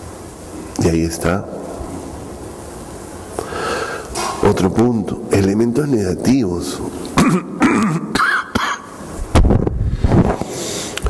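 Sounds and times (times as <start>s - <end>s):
microphone hiss: 0.0s - 11.0s
person breathing in: 3.4s - 4.2s, 10.4s - 11.0s.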